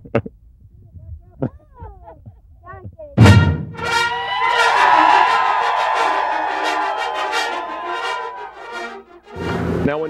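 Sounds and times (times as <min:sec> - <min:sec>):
television theme music: 0:03.2 - 0:09.8.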